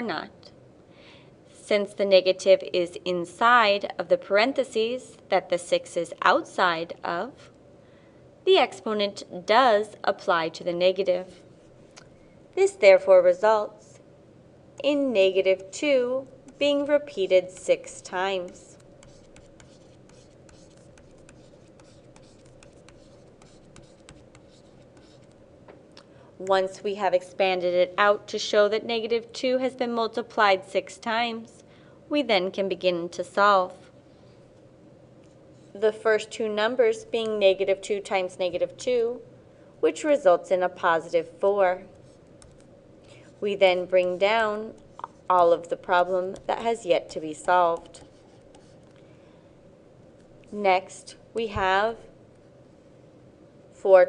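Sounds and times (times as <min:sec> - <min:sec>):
steady low hum: 0:00.0 - 0:54.0
pen scratching on paper: 0:17.5 - 0:25.4, 0:47.4 - 0:48.9.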